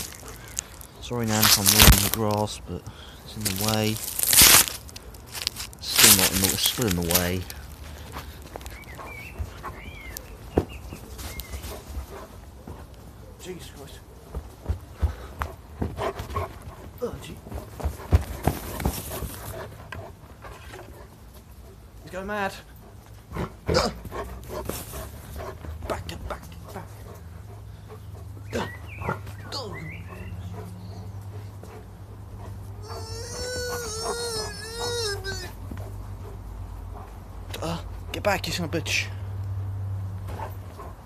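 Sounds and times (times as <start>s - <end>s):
running footsteps on grass: 0.0s - 2.6s, 3.3s - 13.0s
dog whining: 32.7s - 35.9s.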